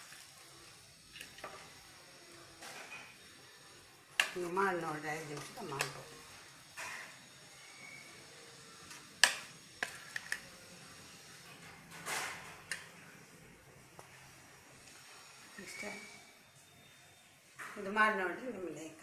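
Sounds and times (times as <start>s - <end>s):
metal spoon stirring in steel bowl: 8.9s - 10.5s
spoon scraping: 9.7s - 10.5s.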